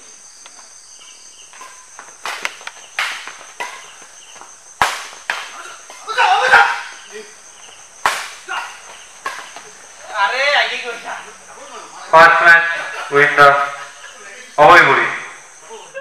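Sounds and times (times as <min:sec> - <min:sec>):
rackets smacking shuttlecock: 0:01.5 - 0:10.0
players shouting: 0:04.8 - 0:16.0.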